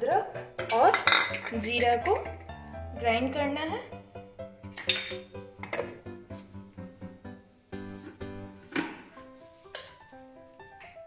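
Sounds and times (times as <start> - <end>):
simple stepping melody: 1.5 - 11.0.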